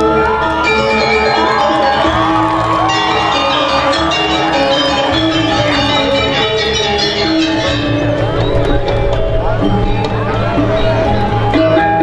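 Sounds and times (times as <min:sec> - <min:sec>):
gamelan playing loudly: 0:00.0 - 0:12.0
gong tones: 0:00.0 - 0:12.0
voices whooping: 0:00.0 - 0:12.0.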